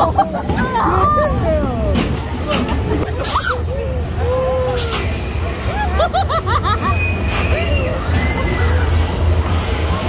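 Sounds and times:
roller coaster rumbling on track: 0.0s - 10.0s
riders shrieking and laughing: 2.9s - 8.9s.

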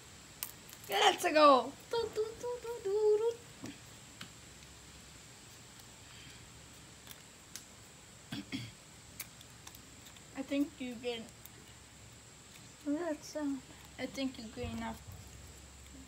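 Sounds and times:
person humming: 2.0s - 3.4s.

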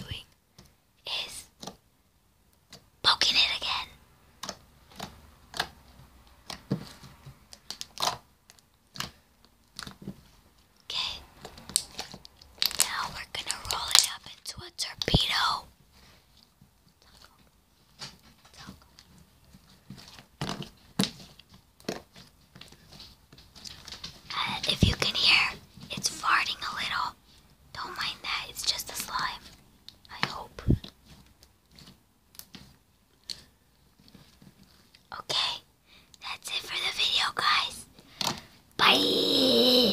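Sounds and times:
slime squelching between hands: 4.3s - 14.4s.

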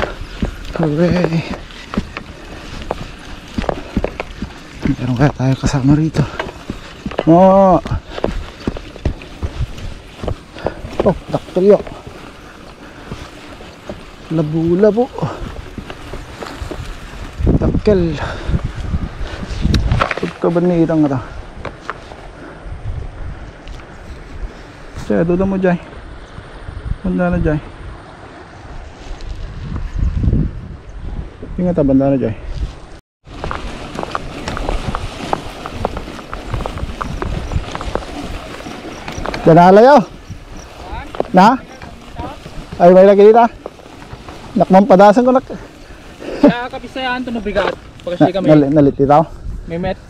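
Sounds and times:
river rushing: 0.0s - 18.5s, 33.3s - 48.6s
tyres rumbling on grass: 0.0s - 22.4s, 33.2s - 49.2s
wind on microphone: 0.0s - 50.0s.

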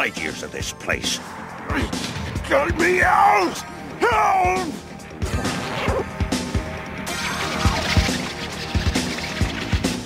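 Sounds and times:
action music: 0.0s - 10.0s.

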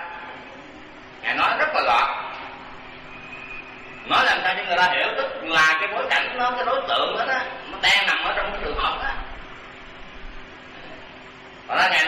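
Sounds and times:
background hum and hiss: 0.0s - 12.0s
faint held tones: 2.3s - 4.7s.

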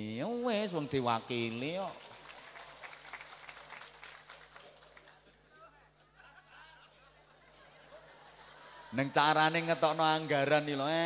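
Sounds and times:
audience clapping: 1.8s - 5.5s.

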